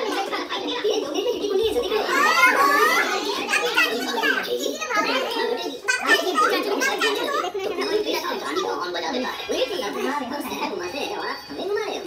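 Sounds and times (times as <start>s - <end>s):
adults talking: 0.0s - 12.0s
child's high voice: 1.7s - 7.7s.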